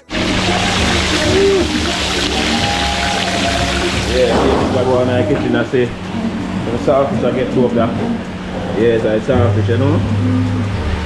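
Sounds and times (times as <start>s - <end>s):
fish sizzling in hot oil: 0.1s - 4.3s.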